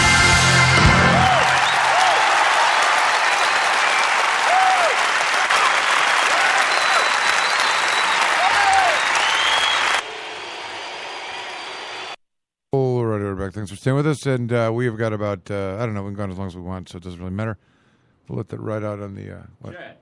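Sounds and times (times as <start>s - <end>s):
crowd applauding and cheering: 0.0s - 12.2s
crowd shouts: 0.8s - 12.2s.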